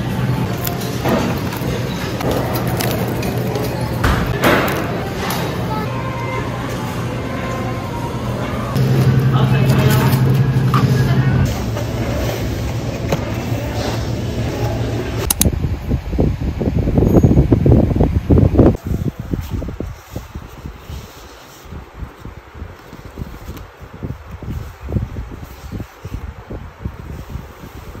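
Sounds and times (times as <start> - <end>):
indistinct voices: 0.0 - 15.3
steady low hum: 0.0 - 17.0
sharp click: 15.2 - 15.5.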